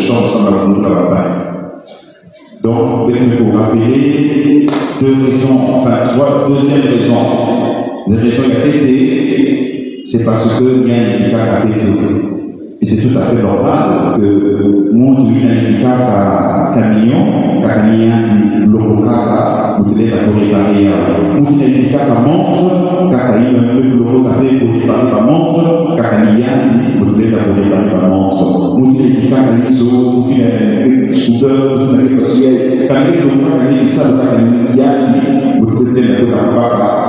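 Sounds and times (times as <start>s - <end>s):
man chanting through loudspeakers: 0.0s - 37.0s.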